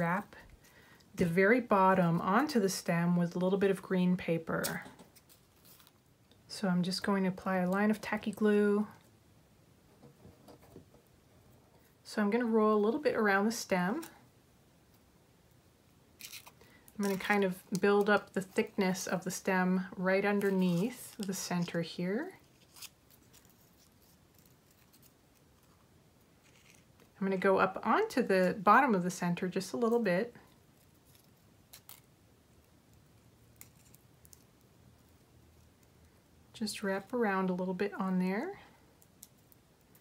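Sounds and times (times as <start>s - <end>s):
crepe paper crinkling: 16.2s - 18.6s, 22.4s - 27.1s.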